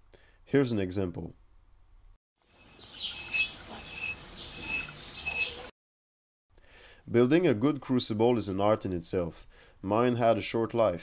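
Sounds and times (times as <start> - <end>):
clear high ringing tone: 2.6 - 5.7
fingernail scratching clay crucible: 3.0 - 5.7.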